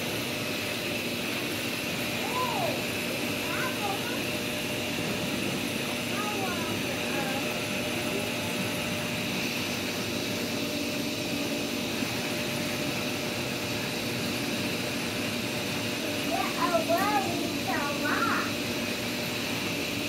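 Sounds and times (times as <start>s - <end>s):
pump hum: 0.0s - 20.0s
churning water rushing: 1.0s - 19.9s.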